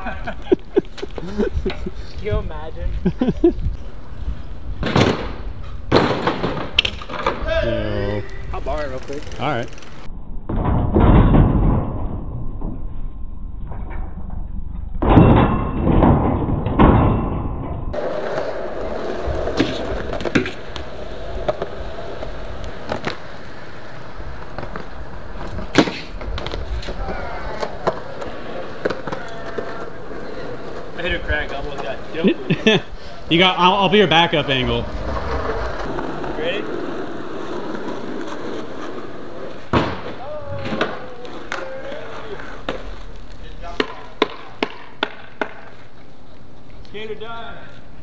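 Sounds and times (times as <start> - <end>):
bike tyres rolling on concrete: 0.0 - 10.2, 17.9 - 48.0.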